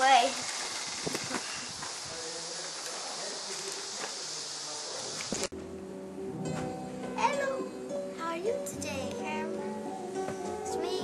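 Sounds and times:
insects buzzing: 0.0s - 5.5s.

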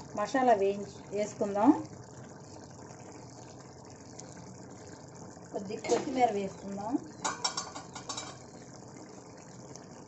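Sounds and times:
gravy simmering bubbling hiss: 0.0s - 10.0s.

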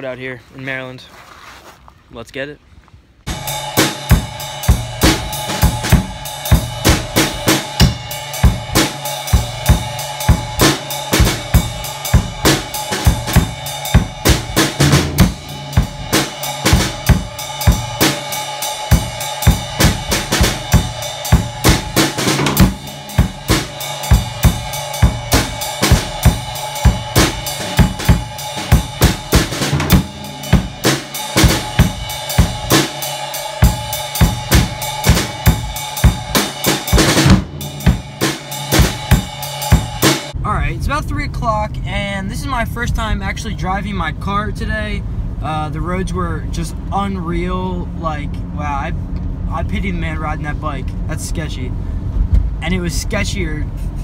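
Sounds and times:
drum kit groove: 3.3s - 41.1s.

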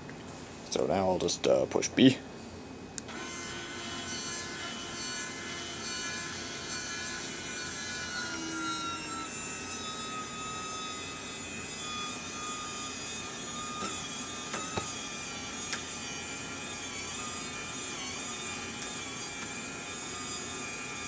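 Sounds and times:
electric winch motor whining: 3.1s - 21.0s.

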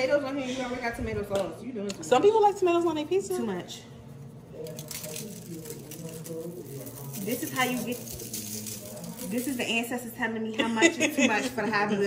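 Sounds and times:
shaker rattling: 4.6s - 10.2s.

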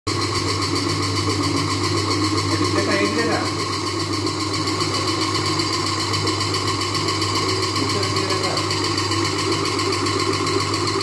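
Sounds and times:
wet grinder motor humming: 0.1s - 11.0s.

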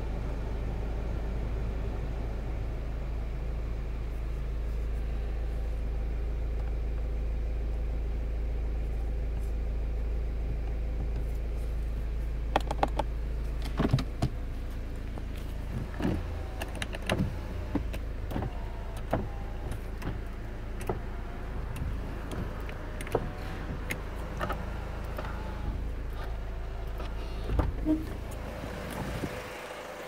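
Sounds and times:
car engine idling: 0.0s - 30.0s
clicks and knocks from controls: 12.4s - 29.8s.

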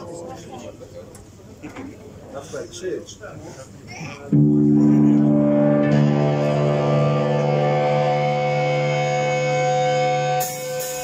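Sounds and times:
distorted electric guitar chord: 4.3s - 11.0s.

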